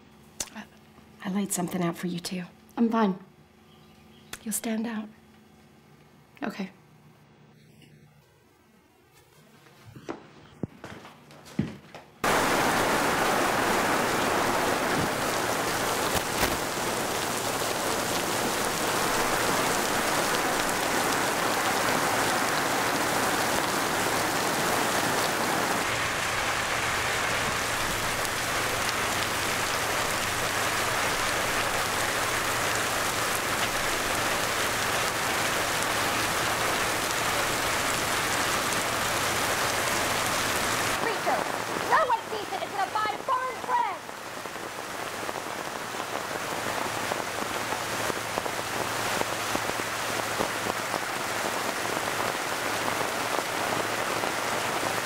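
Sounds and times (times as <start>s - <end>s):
heavy rain pouring: 12.2s - 55.0s.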